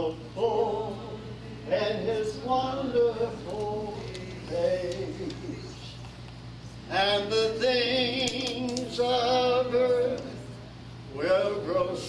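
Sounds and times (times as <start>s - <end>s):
man singing a hymn: 0.0s - 5.9s, 6.9s - 10.4s, 11.1s - 12.0s.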